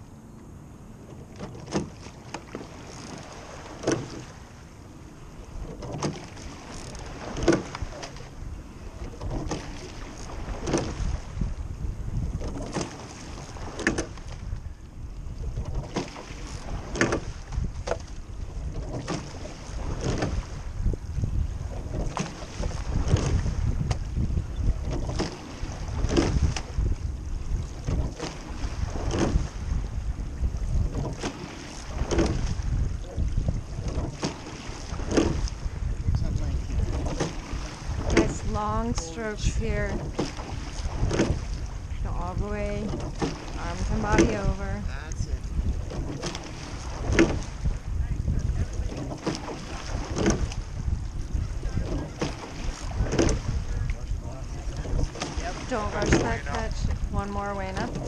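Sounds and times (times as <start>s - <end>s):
water rushing along hull: 0.0s - 58.0s
wind on microphone: 0.0s - 58.0s
oars knocking in oarlocks: 1.1s - 4.3s, 5.6s - 8.3s, 9.0s - 11.1s, 12.3s - 14.7s, 15.4s - 20.5s, 21.7s - 27.0s, 27.6s - 29.6s, 30.7s - 35.6s, 36.7s - 39.0s, 39.9s - 41.7s, 42.8s - 44.6s, 45.5s - 58.0s.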